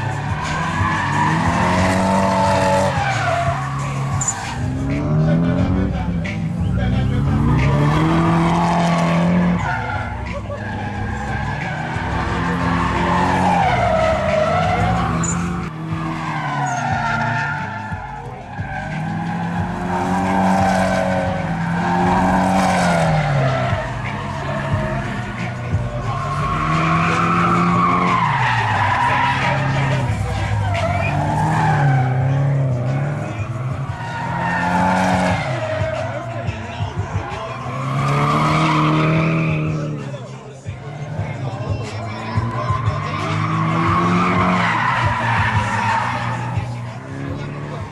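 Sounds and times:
car engines revving hard: 0:00.0 - 0:47.9
tyres screeching on tarmac: 0:00.0 - 0:47.9.

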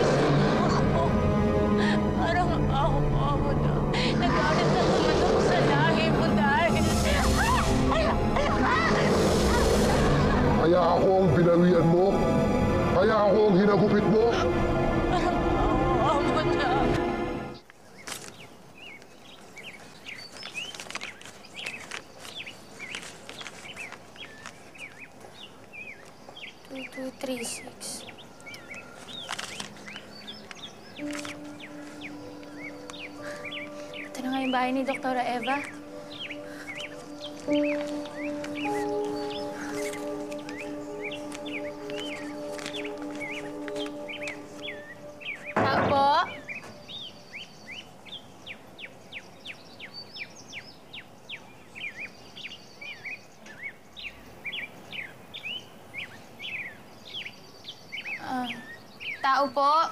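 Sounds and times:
birds chirping: 0:00.0 - 0:59.9.

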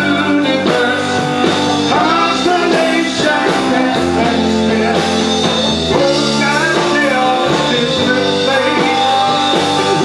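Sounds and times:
live rock band playing: 0:00.0 - 0:10.0.

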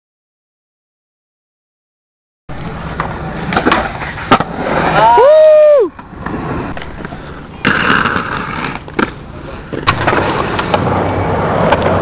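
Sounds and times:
skateboard wheels rolling on concrete: 0:02.5 - 0:12.0
skateboard clacks: 0:02.6 - 0:05.2, 0:06.0 - 0:12.0
person shouting: 0:05.0 - 0:05.9.

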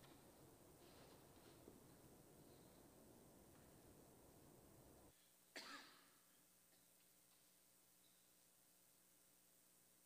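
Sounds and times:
person coughing: 0:05.6 - 0:06.3.

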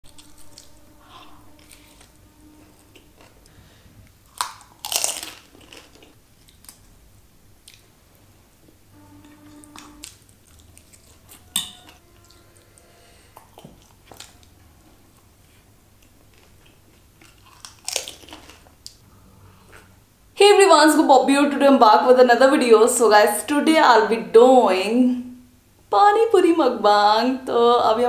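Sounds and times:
fried shell crunching: 0:01.5 - 0:07.0, 0:15.2 - 0:19.0
crisp shell cracking: 0:04.2 - 0:06.9, 0:16.4 - 0:19.0
chewing and mouth clicks: 0:07.6 - 0:07.9, 0:16.0 - 0:19.0.

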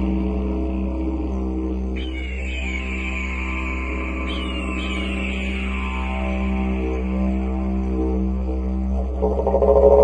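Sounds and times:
didgeridoo drone: 0:00.0 - 0:10.0.

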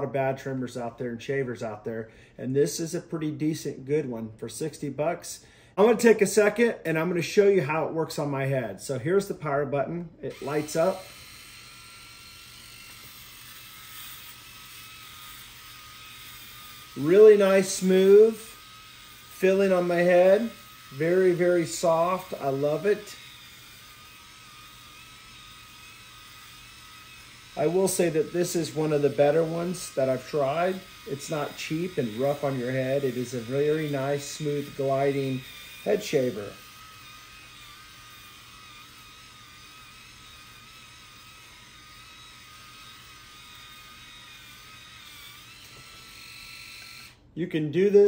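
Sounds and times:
electric shaver whirring: 0:10.3 - 0:47.3.

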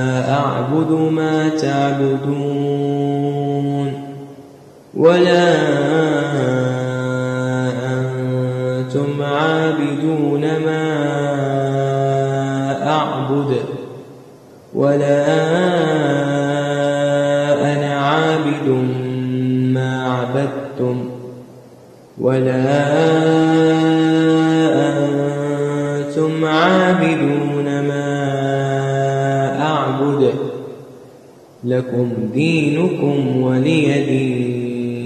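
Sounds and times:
man chanting recitation: 0:00.0 - 0:04.3, 0:04.9 - 0:14.0, 0:14.7 - 0:21.4, 0:22.2 - 0:30.9, 0:31.6 - 0:35.0.

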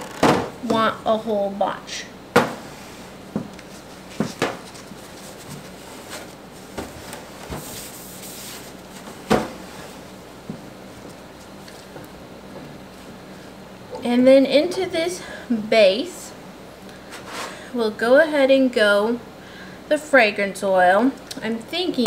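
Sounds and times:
paper towel rustle: 0:02.7 - 0:10.2.

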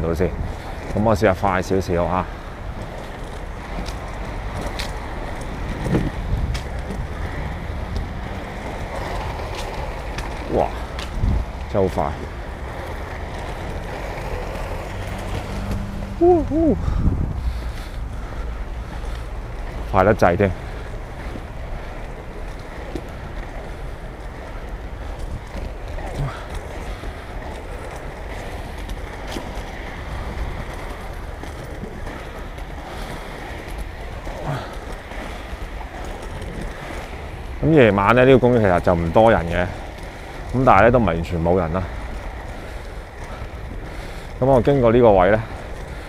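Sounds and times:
wind noise on microphone: 0:00.0 - 0:01.4, 0:02.3 - 0:19.9
wind buffeting microphone: 0:00.0 - 0:46.0
inline skate wheels rolling on tiles: 0:00.5 - 0:16.3, 0:19.0 - 0:46.0.

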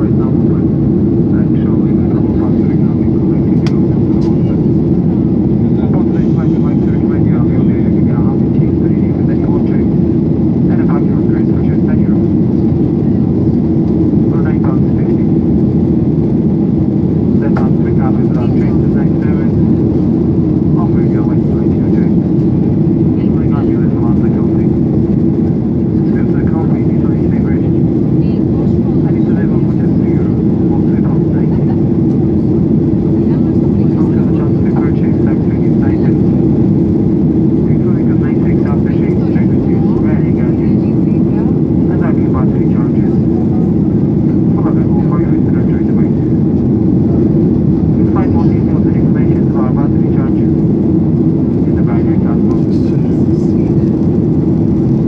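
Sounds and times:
jet cabin roar: 0:00.0 - 0:55.0
passengers talking faintly: 0:00.0 - 0:55.0
steady hum: 0:00.0 - 0:55.0.

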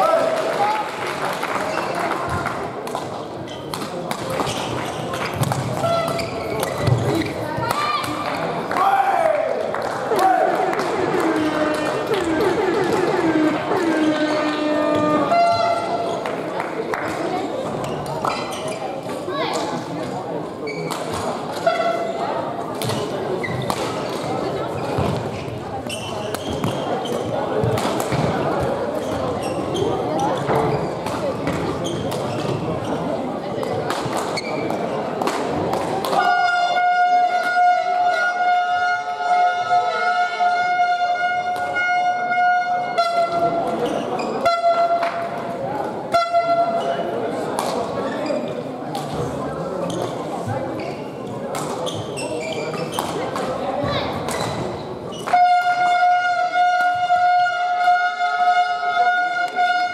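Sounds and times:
chattering voices in echoing hall: 0:00.0 - 0:59.9
loud horn-like tone: 0:11.4 - 0:16.0, 0:55.3 - 0:59.9.

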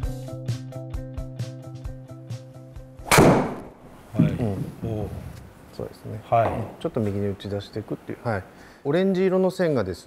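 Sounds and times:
background music with a beat: 0:00.0 - 0:03.1
golf club striking ball: 0:03.0 - 0:04.4.

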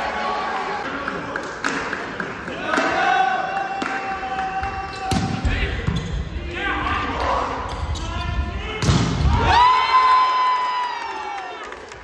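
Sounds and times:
long shout of celebration: 0:09.3 - 0:11.9.

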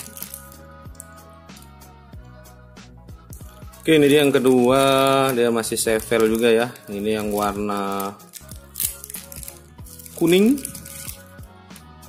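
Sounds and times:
plastic blister pack crinkle: 0:00.0 - 0:01.7, 0:03.3 - 0:12.0.

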